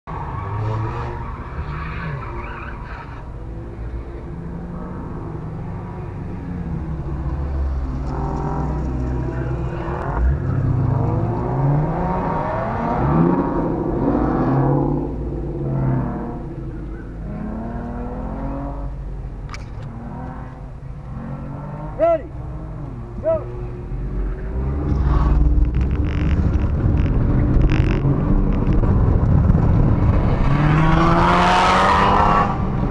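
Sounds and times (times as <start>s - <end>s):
car engine revving hard: 30.3s - 32.9s.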